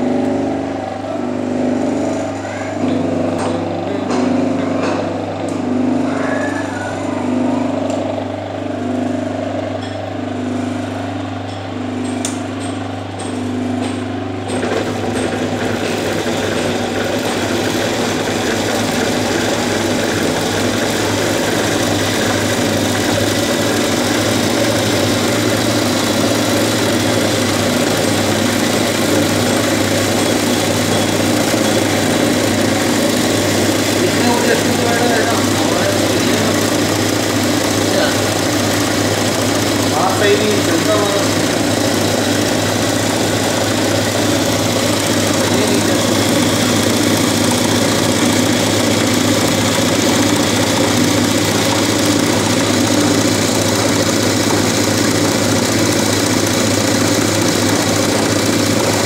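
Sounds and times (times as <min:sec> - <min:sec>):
sewing machine whirring: 0:00.0 - 0:59.0.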